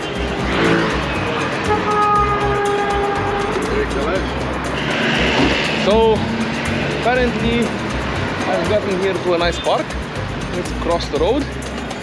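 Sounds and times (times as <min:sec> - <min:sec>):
cars driving past: 0:00.0 - 0:10.7
background music: 0:00.0 - 0:12.0.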